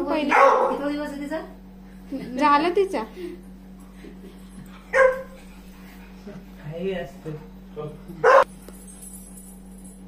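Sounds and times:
steady low hum: 0.0 - 10.0.

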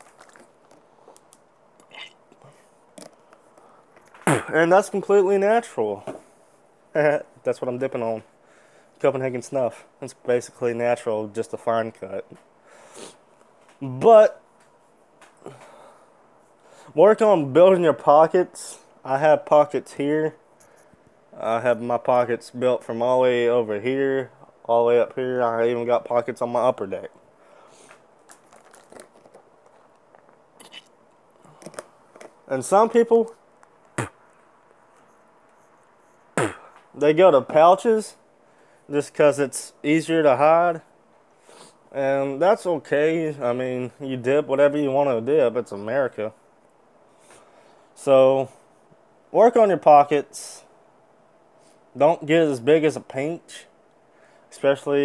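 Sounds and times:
plastic bottle crinkling: 0.0 - 2.2, 28.2 - 32.4
wet mouth clicks and lip smacks: 30.6 - 30.9.

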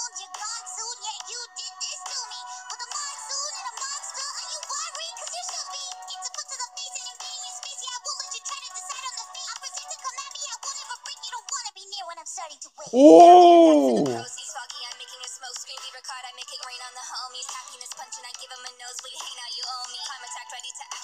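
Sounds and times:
woman rapping over a beat: 14.0 - 21.0.

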